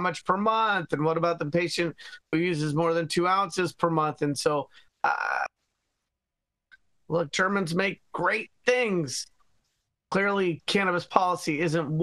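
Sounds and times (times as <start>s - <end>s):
person saying uh: 5.0s - 5.5s.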